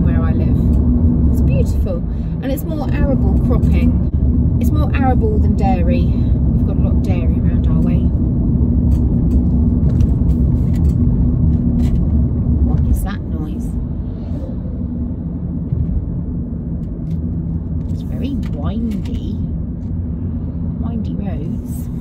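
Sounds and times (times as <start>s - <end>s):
road and tyre noise in car: 0.0s - 22.0s.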